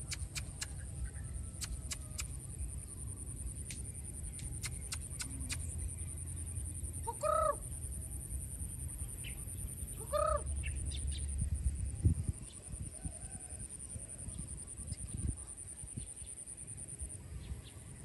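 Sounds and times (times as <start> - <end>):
steady high-pitched hum: 0.0 - 18.0
short animal calls: 10.0 - 10.5.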